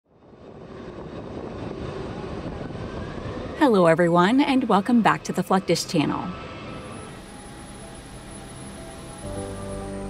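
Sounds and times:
jet engines running: 0.1s - 10.0s.

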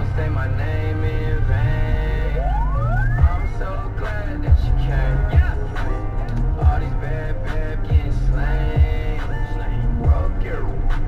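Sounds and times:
rising siren-like glide: 0.0s - 4.3s
hip-hop track with heavy bass: 0.0s - 11.0s.

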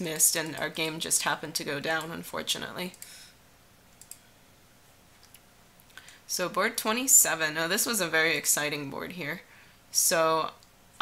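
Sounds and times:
faint computer clicks: 3.9s - 4.2s.

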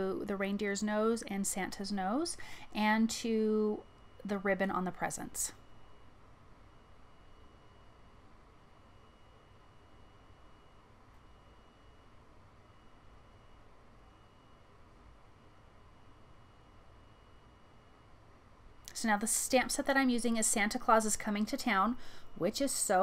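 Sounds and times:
faint high whine: 0.0s - 23.0s.

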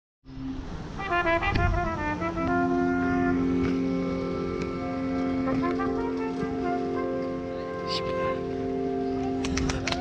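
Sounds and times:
live jazz band playing: 0.9s - 10.0s.

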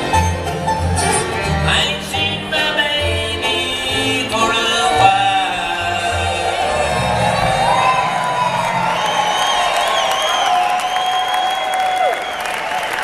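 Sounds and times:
audience cheering and whooping: 5.6s - 13.0s
applause: 7.7s - 13.0s.

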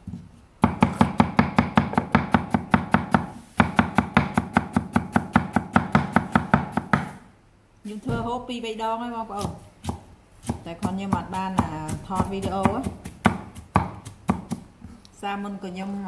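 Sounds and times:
knife chopping on wooden board: 0.6s - 7.2s, 9.4s - 14.7s.

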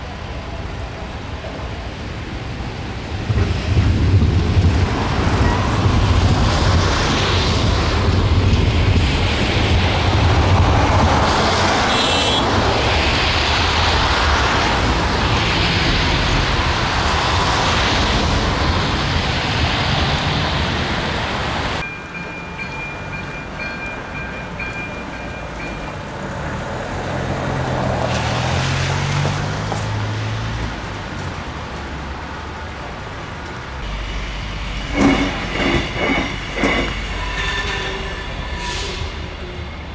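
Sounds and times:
cars passing on wet road: 0.0s - 21.8s, 23.0s - 37.2s
train engine hum: 0.0s - 28.2s, 30.6s - 39.9s
street noise: 0.0s - 39.9s.

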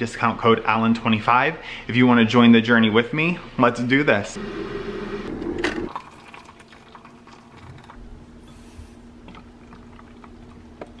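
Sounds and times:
liquid pouring into container: 4.4s - 8.0s, 9.2s - 11.0s.

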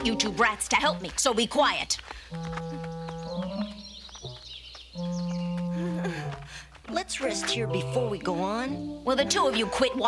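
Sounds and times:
low held instrumental notes: 0.0s - 10.0s.

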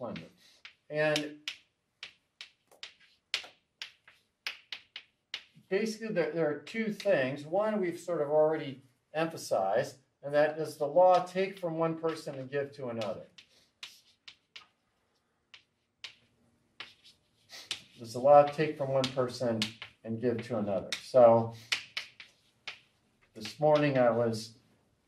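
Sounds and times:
chalk tapping on chalkboard: 0.2s - 5.7s, 11.1s - 12.4s, 13.0s - 14.8s, 15.4s - 24.2s.

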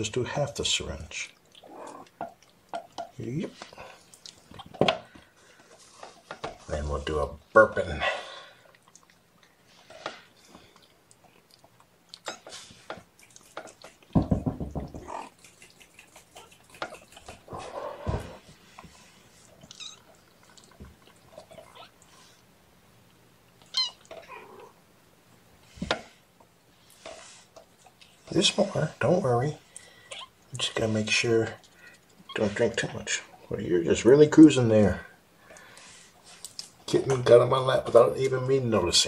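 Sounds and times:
kittens mewing: 1.6s - 2.3s, 14.9s - 18.4s, 23.6s - 24.8s.

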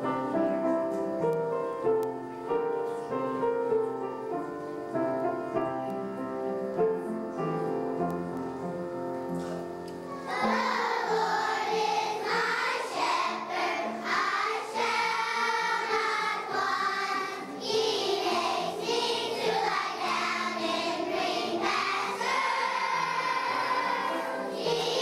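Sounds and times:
piano accompaniment: 0.0s - 25.0s
children's choir singing: 10.0s - 25.0s.

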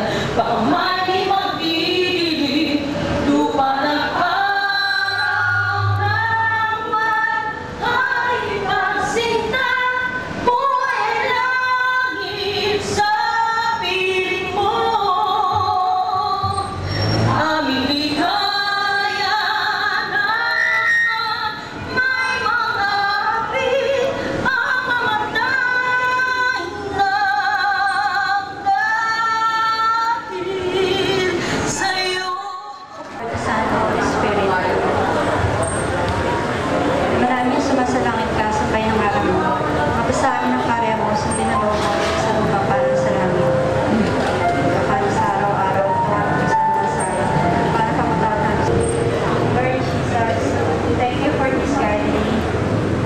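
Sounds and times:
woman singing with vibrato: 0.0s - 35.6s, 37.1s - 52.4s
group singing an anthem: 3.4s - 13.6s.

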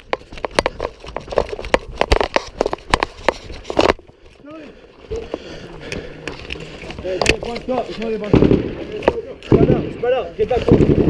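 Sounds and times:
rifles firing rapid shots: 8.2s - 11.0s.

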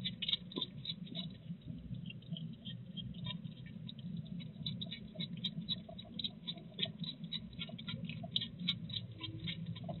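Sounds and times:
hedgehog chewing wet clicks: 0.0s - 10.0s.

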